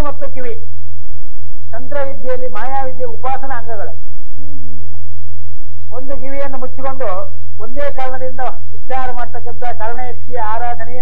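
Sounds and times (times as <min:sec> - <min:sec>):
faint high whine: 0:00.0 - 0:11.0
voiced syllable: 0:05.9 - 0:11.0.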